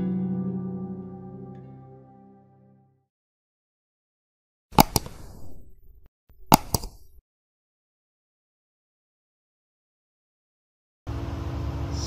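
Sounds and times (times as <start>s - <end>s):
computer mouse clicks: 4.8s - 7.2s.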